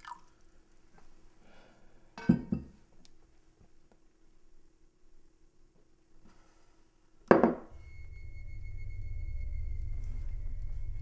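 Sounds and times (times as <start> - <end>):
low drone: 7.7 - 11.0
thin high tone: 7.7 - 11.0.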